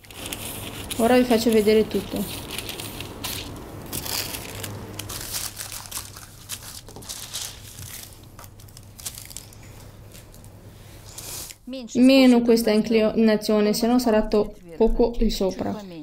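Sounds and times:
scissors cutting tissue paper: 0.0s - 10.3s
tissue paper crinkling and rustling: 0.0s - 10.5s.

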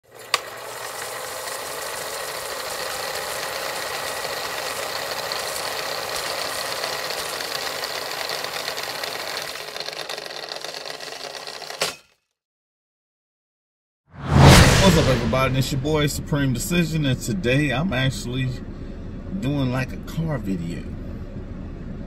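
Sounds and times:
film projector rattling: 0.0s - 12.0s.

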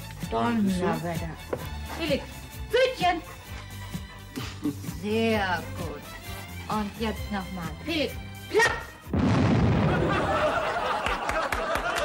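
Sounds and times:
pyrotechnic bang with rumble: 9.1s - 10.3s
audience laughter: 9.8s - 12.0s.

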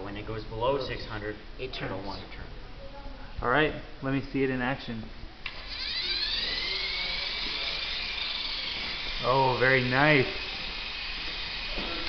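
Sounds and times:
servo motors whining: 5.5s - 12.0s.

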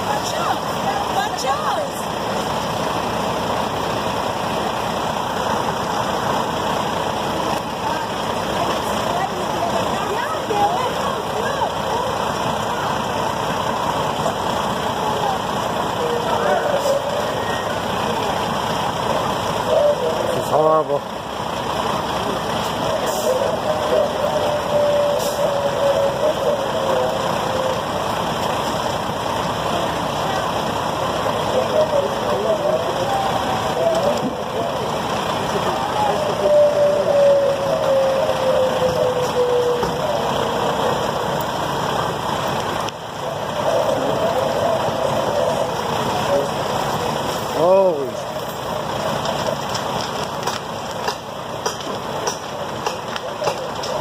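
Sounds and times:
fire engine idling: 0.0s - 54.0s.

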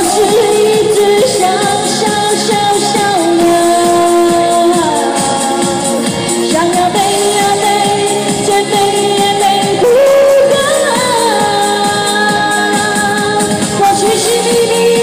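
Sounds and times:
amplified backing music: 0.0s - 15.0s
woman singing into microphone: 0.0s - 15.0s.

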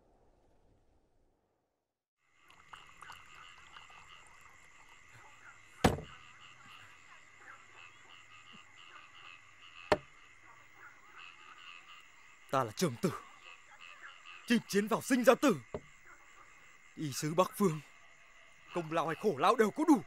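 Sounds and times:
frogs and insects chorus: 2.2s - 20.0s
sharp knocks: 5.8s - 6.2s.

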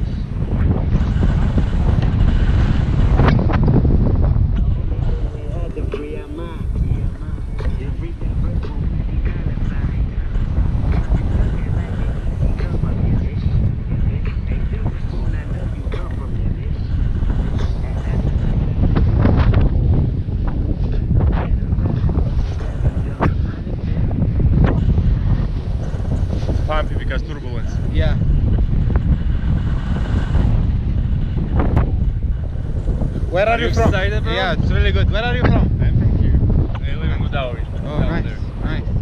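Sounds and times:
wind rumbling on microphone: 0.0s - 39.0s.

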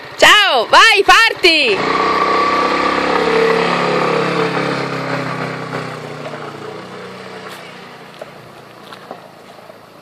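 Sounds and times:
motor scooter riding off: 1.6s - 9.8s.

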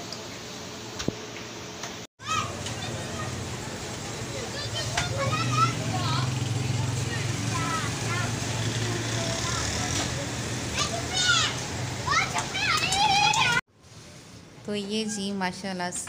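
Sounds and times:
children chattering and calling out: 2.2s - 13.6s.

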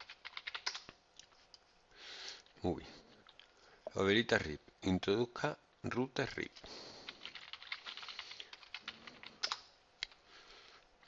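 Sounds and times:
computer keyboard typing: 0.0s - 0.9s, 7.1s - 9.7s.

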